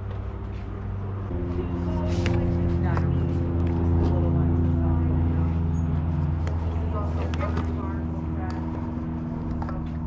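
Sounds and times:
low mechanical hum: 0.0 - 10.0
faint voices: 0.4 - 10.0.

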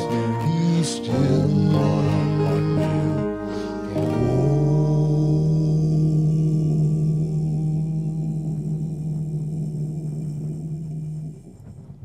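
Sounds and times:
acoustic guitar and bass song: 0.0 - 11.5
low ringing tone: 0.0 - 11.6.

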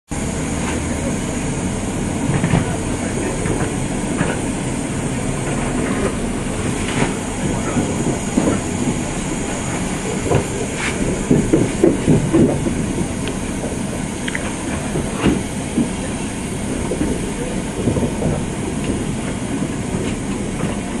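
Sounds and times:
train carriage rumble: 0.1 - 21.0
wheels clacking on rail joints: 2.0 - 21.0.

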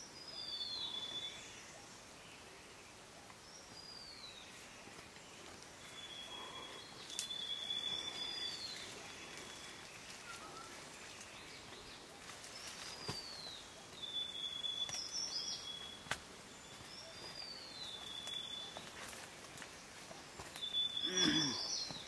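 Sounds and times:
twigs snapping: 7.1 - 7.4
bird whistling song: 14.0 - 16.0, 20.5 - 22.0.

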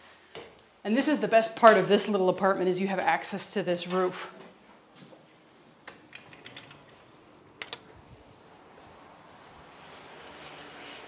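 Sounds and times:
sharp clicks: 7.6 - 7.9.

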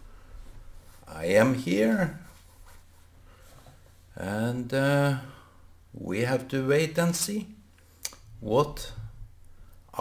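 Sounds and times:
faint low hum: 0.0 - 10.0
man's voice: 1.0 - 2.3, 4.2 - 5.4, 6.0 - 7.6, 8.4 - 9.2.

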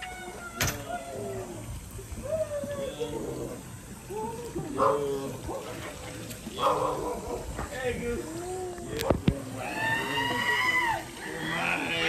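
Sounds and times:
people playing in a pool: 0.0 - 12.0.

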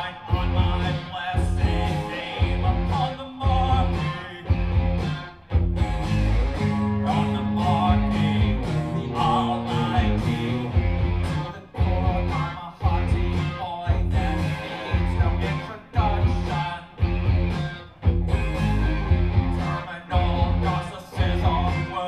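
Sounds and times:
drums: 0.0 - 22.0
electric guitar: 0.0 - 22.0.

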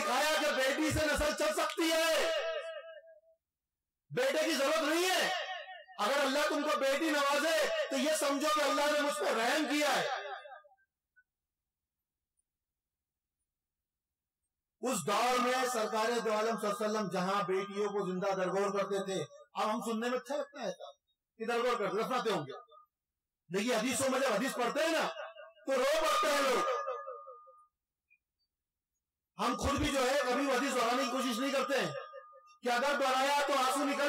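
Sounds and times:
man speaking: 0.0 - 2.5, 4.1 - 5.4, 6.0 - 10.2, 14.8 - 20.8, 21.4 - 22.6, 23.5 - 26.8, 29.4 - 32.0, 32.6 - 34.0.

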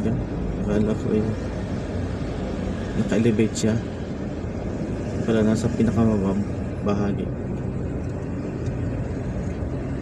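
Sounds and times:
car engine rumble: 0.0 - 10.0
tyres on road: 0.0 - 10.0.

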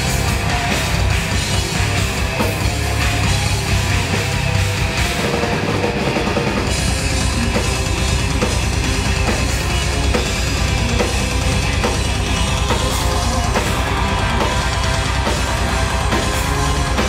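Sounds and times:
bass guitar: 0.0 - 17.0
distorted electric guitars: 0.0 - 17.0
drum kit beat: 0.0 - 17.0.

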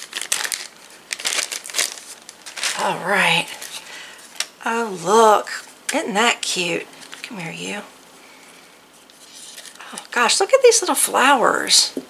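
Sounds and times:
plastic bag crinkling: 0.0 - 4.6, 6.9 - 7.3, 9.1 - 10.0.

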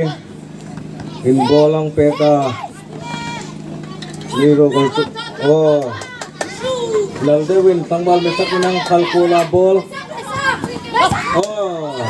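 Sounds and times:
people shouting: 1.0 - 12.0.

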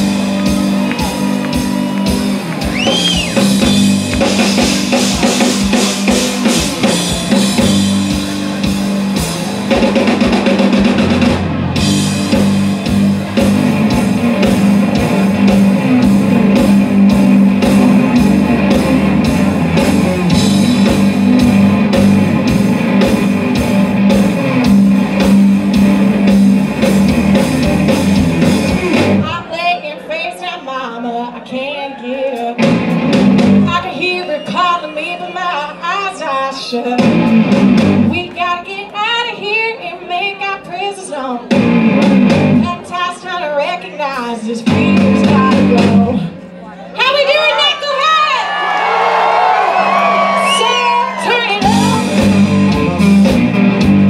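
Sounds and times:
drum kit: 0.0 - 29.4, 32.4 - 33.9, 37.0 - 38.4, 41.5 - 42.8, 44.6 - 46.2, 49.4 - 54.0
bass guitar: 0.0 - 29.5, 32.6 - 33.9, 36.9 - 38.4, 41.4 - 42.9, 44.6 - 46.4, 49.3 - 54.0
electric guitar: 0.0 - 29.5, 32.6 - 33.8, 36.8 - 38.4, 41.4 - 42.9, 49.4 - 54.0.

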